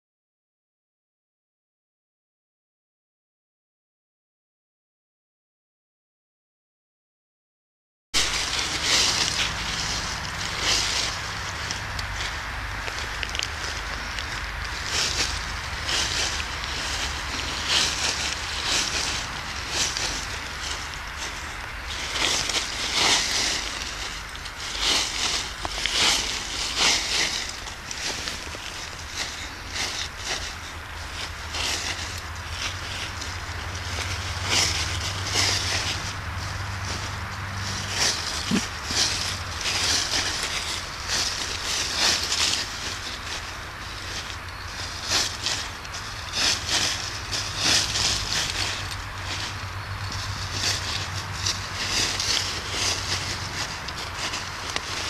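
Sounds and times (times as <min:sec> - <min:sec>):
dry leaves rustling and crackling: 0:08.2 - 0:55.0.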